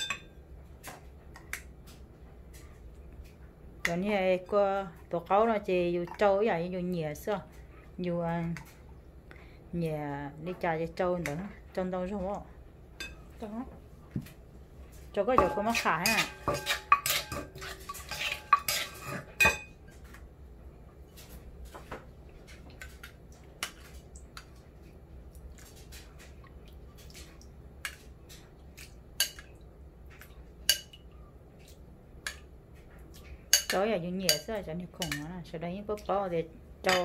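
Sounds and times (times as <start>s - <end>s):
metal spoon scraping metal bowl: 15.3s - 19.7s.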